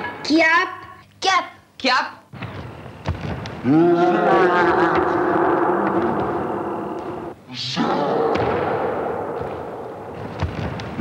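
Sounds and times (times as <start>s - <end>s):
heavy thud with echo: 8.3s - 10.9s.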